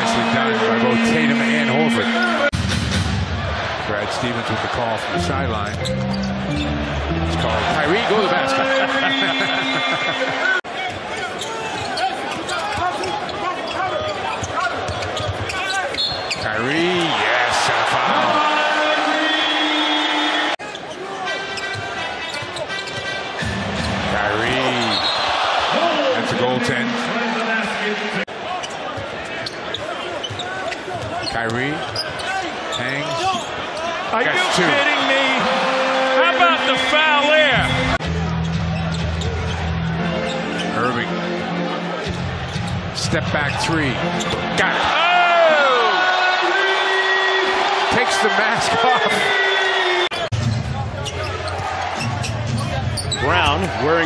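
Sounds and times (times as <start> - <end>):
arena crowd noise: 0.0 - 54.0.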